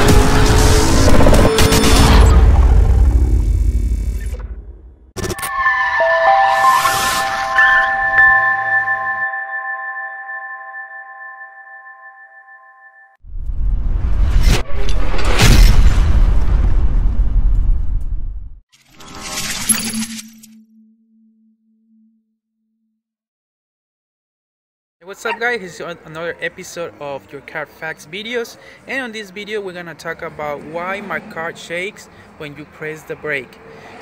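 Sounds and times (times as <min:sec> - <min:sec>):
low hum: 0:00.0 - 0:05.4
ringing chime-like tones: 0:05.4 - 0:13.2.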